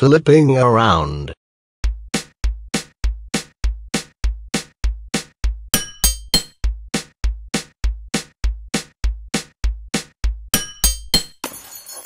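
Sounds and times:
drum machine beat: 1.9 - 11.1
glassy clinks: 5.8 - 6.5, 10.6 - 12.0
glass shattering: 10.6 - 12.0.

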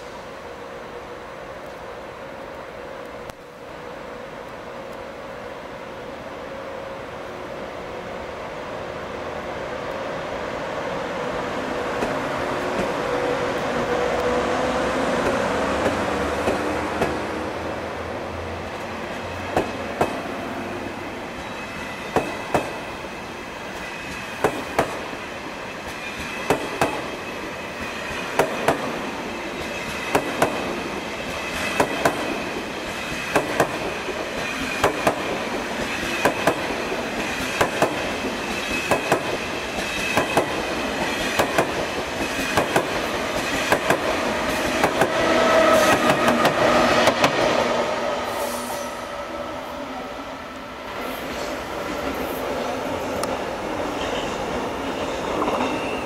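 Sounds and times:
train running noise: 0.0 - 56.0
train wheels clicking over track: 15.1 - 17.6, 18.8 - 20.4, 21.3 - 22.9, 23.7 - 48.8.

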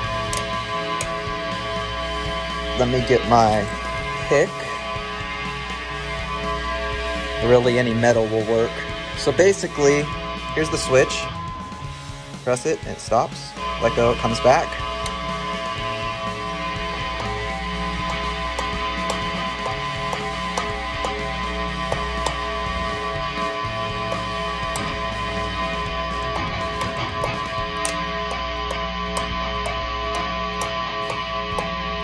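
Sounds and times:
distorted guitar amp hum: 0.0 - 32.0
guitar amp feedback: 0.0 - 32.0
metal tool tapping pickups: 2.8 - 4.6, 17.2 - 31.8.

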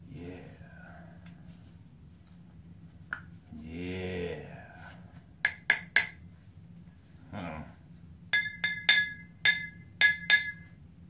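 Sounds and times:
knife tapping glass bottle: 8.4 - 10.7.

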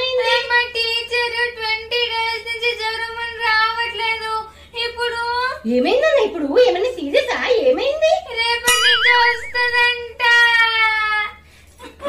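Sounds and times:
girl singing high notes: 8.7 - 9.9.

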